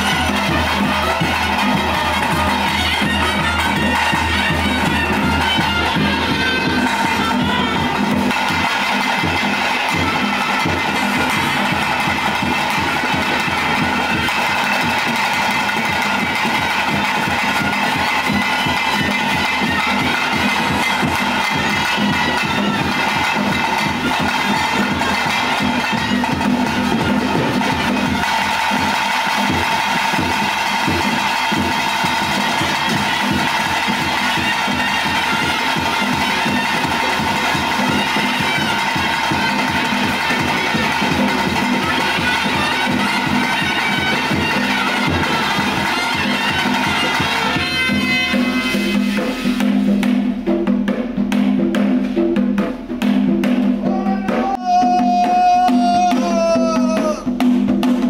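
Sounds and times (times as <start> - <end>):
fast beat on barrel drums: 0.0 - 58.0.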